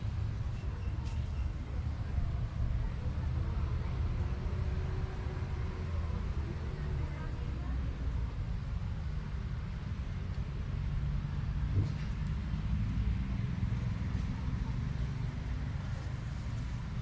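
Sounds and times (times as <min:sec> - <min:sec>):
low outdoor rumble: 0:00.0 - 0:17.0.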